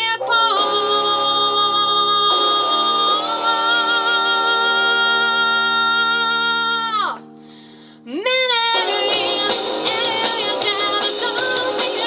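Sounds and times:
live rock band: 0:09.1 - 0:12.0.

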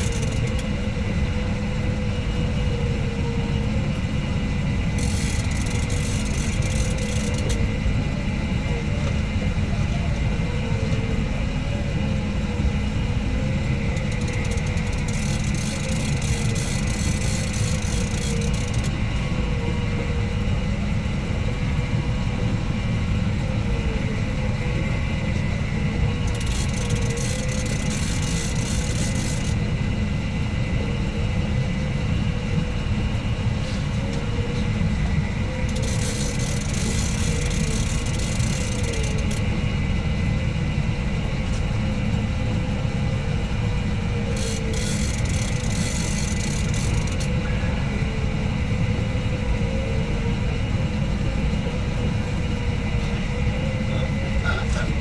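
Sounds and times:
boat engine rumbling: 0:00.0 - 0:55.0.

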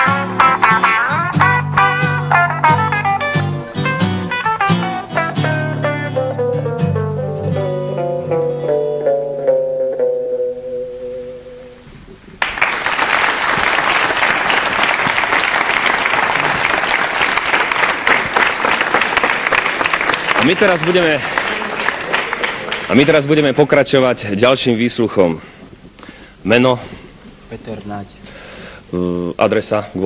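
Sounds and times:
swing-style guitar playing: 0:00.0 - 0:12.4
studio audience applauding: 0:12.4 - 0:23.9.

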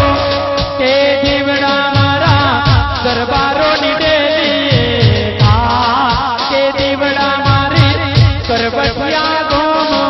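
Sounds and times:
low drum beats: 0:00.0 - 0:10.0
man singing with vibrato: 0:00.0 - 0:10.0.

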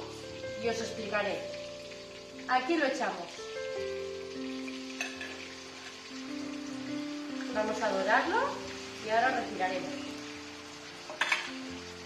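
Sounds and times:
chicken sizzling in hot oil: 0:00.0 - 0:12.0
metal skimmer clinking on pan: 0:05.0 - 0:06.0, 0:11.1 - 0:11.6.

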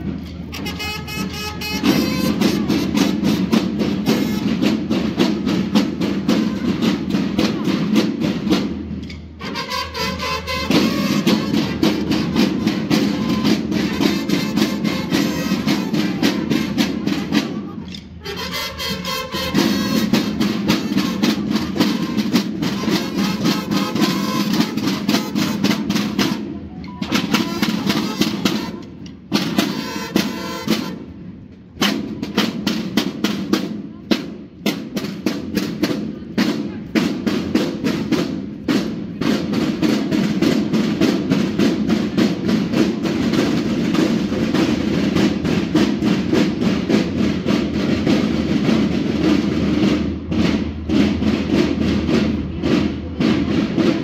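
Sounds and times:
snare drums playing a cadence: 0:00.0 - 0:31.2.

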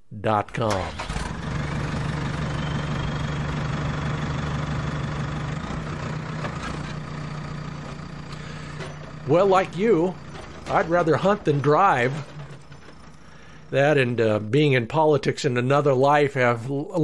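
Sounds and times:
vehicle engine running: 0:00.9 - 0:14.4.

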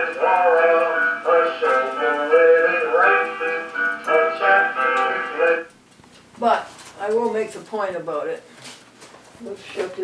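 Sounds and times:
song through television speaker: 0:00.0 - 0:05.8.

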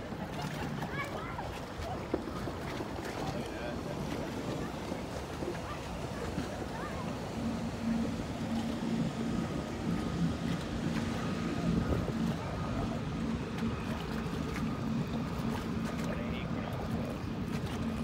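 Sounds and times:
boat engine droning: 0:00.0 - 0:18.0
water noise: 0:00.0 - 0:18.0
wind: 0:00.0 - 0:18.0.

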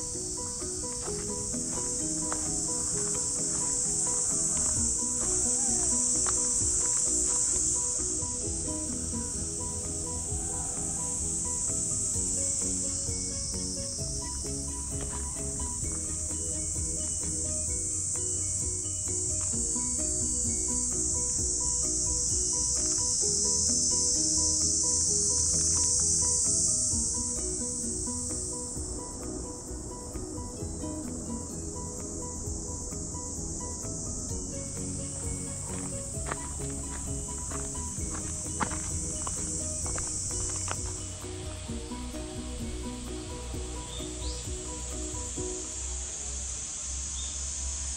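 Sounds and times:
cicada chorus: 0:00.0 - 0:47.9
soft background music: 0:00.0 - 0:47.9.

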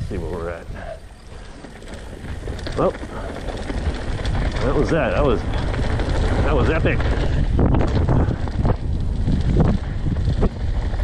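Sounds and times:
bike rolling on gravel: 0:00.0 - 0:11.0
wind buffeting microphone: 0:00.0 - 0:11.0.

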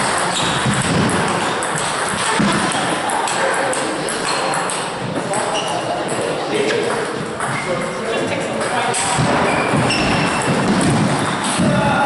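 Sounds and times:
table tennis balls clicking: 0:00.0 - 0:11.7
background voices in hall: 0:00.0 - 0:12.0.

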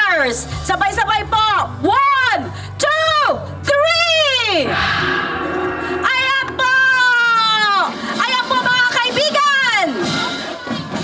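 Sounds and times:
gongs ringing: 0:04.7 - 0:08.2.

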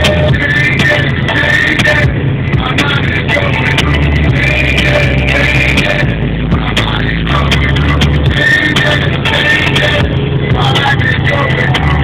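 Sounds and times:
car engine: 0:00.0 - 0:12.0
music with vocals: 0:00.0 - 0:12.0.

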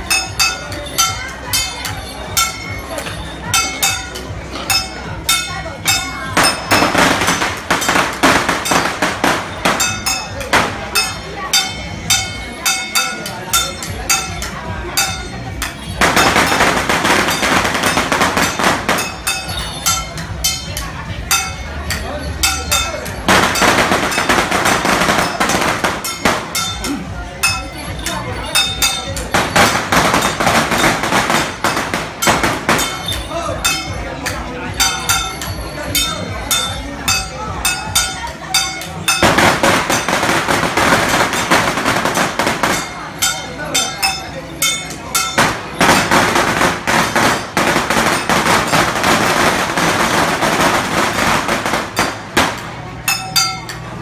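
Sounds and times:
gongs and cymbals struck: 0:00.1 - 0:54.0
firecrackers crackling: 0:00.2 - 0:54.0.

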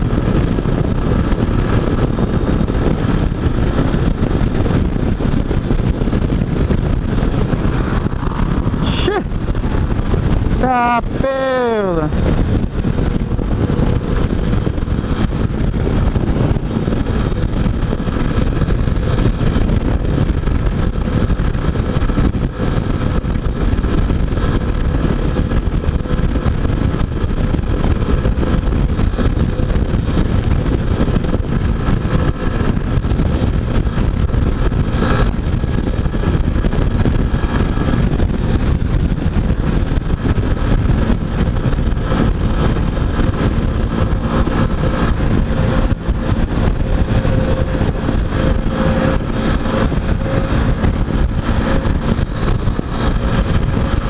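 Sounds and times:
motorcycle engine cruising: 0:00.0 - 0:54.0
wind rush on microphone: 0:00.0 - 0:54.0.

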